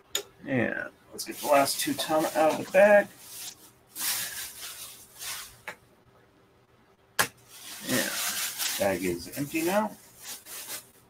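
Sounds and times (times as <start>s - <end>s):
bag rustling: 1.3s - 5.6s, 7.5s - 11.0s.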